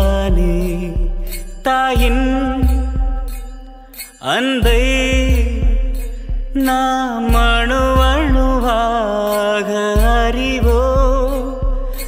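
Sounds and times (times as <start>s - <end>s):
steady drum beat: 0.0s - 3.6s, 4.6s - 9.1s, 10.0s - 12.0s
person singing: 0.0s - 12.0s.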